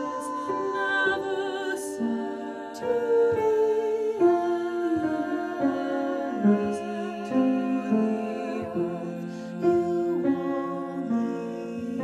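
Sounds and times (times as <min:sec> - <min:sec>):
women singing a cappella harmony: 0:00.0 - 0:12.0.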